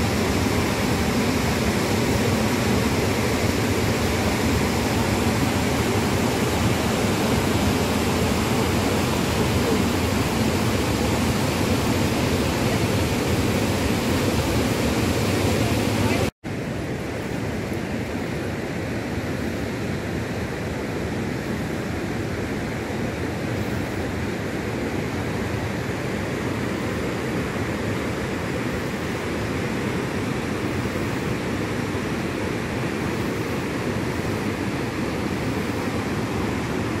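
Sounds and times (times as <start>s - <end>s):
waterfall rushing: 0.0s - 16.3s, 21.1s - 37.0s.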